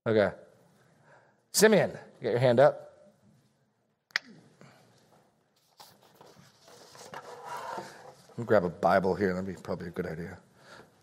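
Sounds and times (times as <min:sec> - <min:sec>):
light rubbing and scraping: 0:05.6 - 0:08.7.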